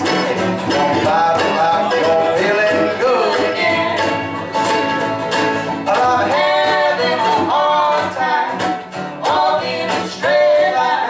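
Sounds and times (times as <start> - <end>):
person singing: 0.0 - 4.2, 5.8 - 11.0
mandolin: 0.0 - 11.0
strummed acoustic guitar: 0.0 - 11.0.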